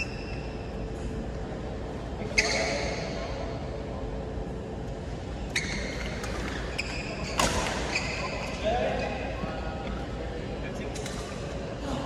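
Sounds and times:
sneakers squeaking on court floor: 2.2 - 3.2, 5.4 - 9.3.

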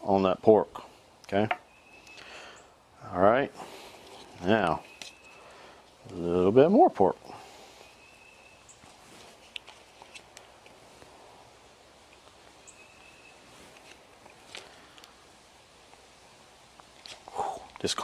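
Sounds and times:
distant bird chirps: 1.5 - 2.8, 4.4 - 5.8, 7.3 - 9.0, 12.5 - 13.7.

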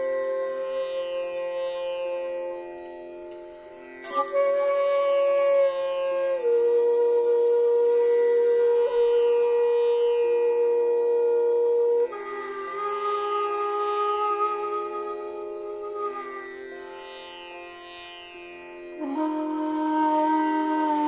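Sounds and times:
bamboo flute held notes: 0.0 - 17.6, 18.6 - 21.0.

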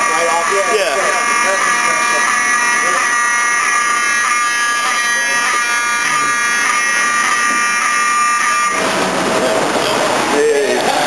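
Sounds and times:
fire alarm buzzing: 0.0 - 10.2.

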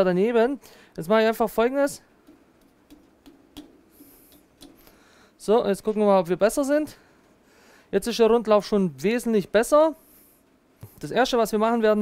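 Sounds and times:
soft hiss: 0.4 - 12.0.

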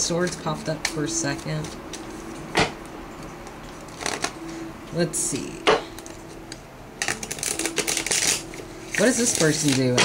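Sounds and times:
cards being shuffled: 3.7 - 4.4, 7.0 - 10.0
crisp rustle of cards: 7.1 - 10.0.

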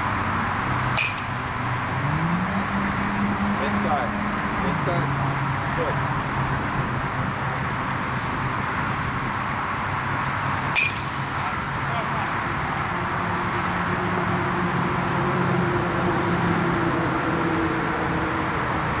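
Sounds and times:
baseball bat hitting ball: 0.8 - 1.7, 10.6 - 11.9.

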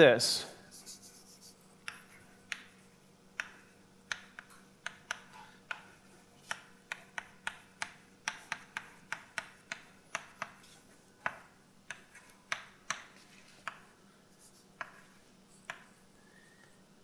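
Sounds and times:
chalk tapping and scratching: 0.6 - 16.0.

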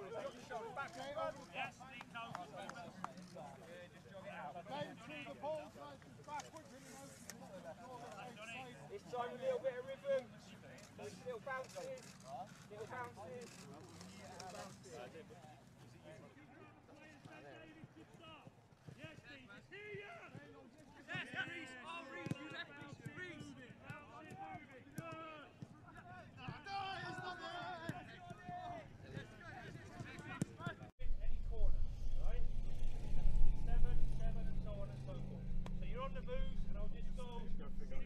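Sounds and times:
steady low rumble: 31.0 - 38.0.

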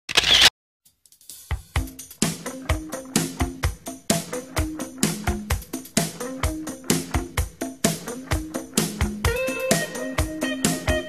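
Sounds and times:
drum beat with deep kick drum: 1.2 - 11.0.

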